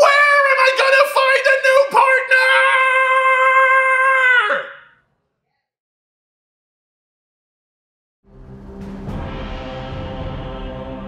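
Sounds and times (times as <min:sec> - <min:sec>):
man's long high cry: 0:00.0 - 0:04.9.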